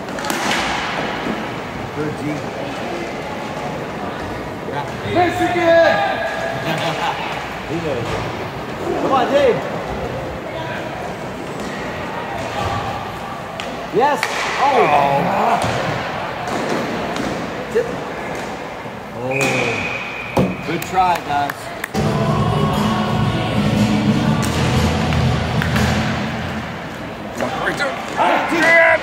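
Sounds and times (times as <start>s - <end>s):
sticks and puck hitting boards: 0.0s - 1.4s, 13.6s - 14.8s, 15.6s - 17.5s, 24.4s - 26.7s
referee's whistle: 19.2s - 20.7s
spectators shouting: 27.6s - 29.0s.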